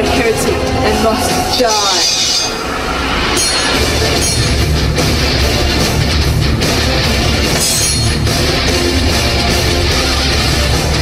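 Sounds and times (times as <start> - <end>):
heavy bass: 0.0 - 11.0
metal blades scraping: 0.1 - 5.1, 7.4 - 8.3.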